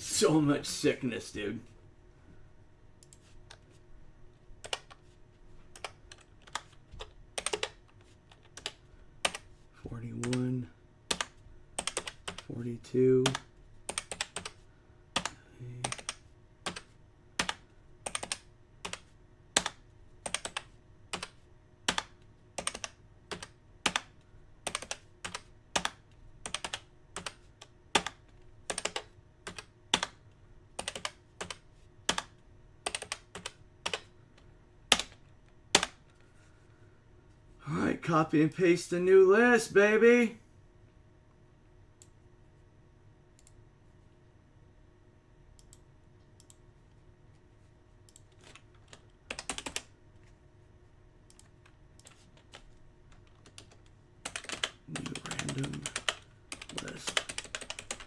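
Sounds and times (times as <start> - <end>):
keyboard keys clicking: 4.6 - 5.0, 5.8 - 9.5, 30.8 - 34.1, 48.1 - 49.9, 51.3 - 58.0.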